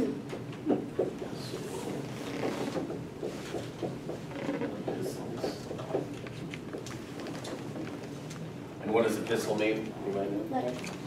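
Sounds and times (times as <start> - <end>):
faint room murmur: 0.0 - 11.0
marker writing on whiteboard: 0.7 - 8.0.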